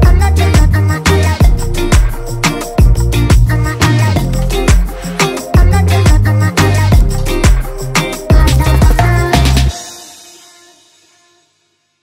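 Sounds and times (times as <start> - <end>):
pop song chord ringing out: 0.0 - 11.2.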